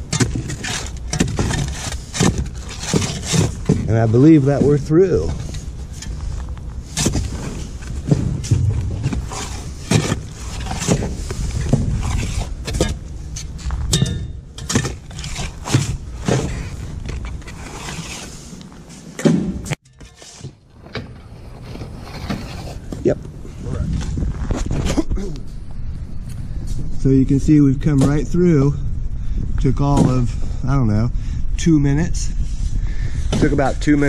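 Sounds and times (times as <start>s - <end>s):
digging tool scraping sand: 0.0s - 12.8s, 17.4s - 19.1s.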